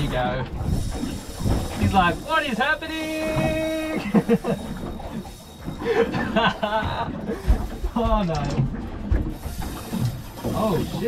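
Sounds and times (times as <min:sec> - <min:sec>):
man chuckling and laughing: 0:04.0 - 0:04.8, 0:05.8 - 0:07.3.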